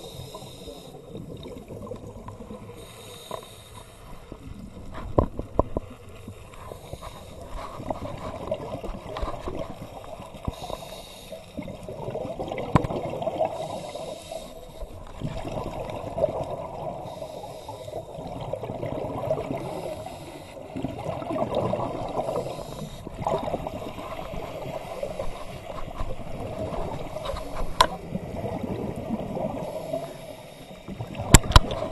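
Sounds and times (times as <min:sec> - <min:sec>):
underwater bubbling and regulator breathing: 0:00.0 - 0:31.9.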